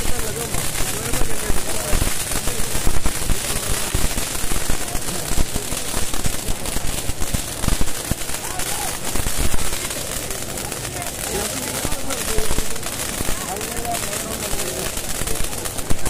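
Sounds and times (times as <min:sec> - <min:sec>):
firecrackers popping: 0:00.0 - 0:16.0
fountain fireworks hissing: 0:00.0 - 0:16.0.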